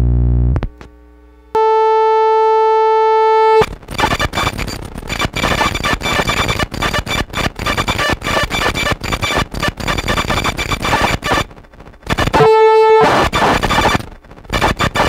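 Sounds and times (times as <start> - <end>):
buzzy electronic keyboard note: 1.6 - 3.6, 12.2 - 13.4
harsh stuttering glitch noise: 3.6 - 15.0.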